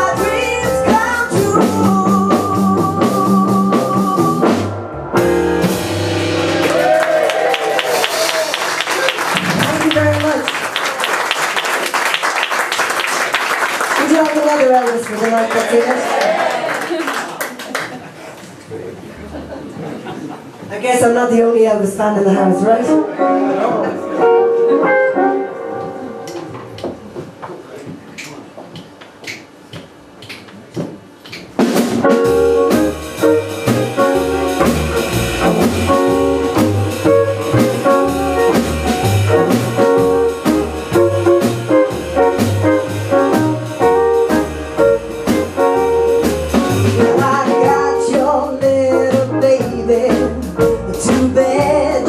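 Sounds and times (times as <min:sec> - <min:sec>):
blues band playing: 0:00.0 - 0:16.1, 0:21.0 - 0:27.4, 0:31.4 - 0:52.0.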